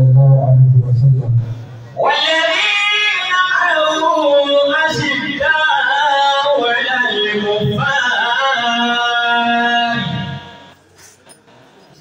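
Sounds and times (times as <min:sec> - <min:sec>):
man singing into a microphone: 0:02.0 - 0:10.7.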